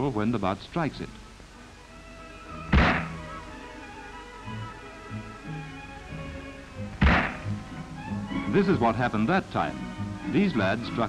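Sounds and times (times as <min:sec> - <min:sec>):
background music: 0:00.0 - 0:11.0
rifle gunshots: 0:02.8 - 0:03.2, 0:07.0 - 0:07.5.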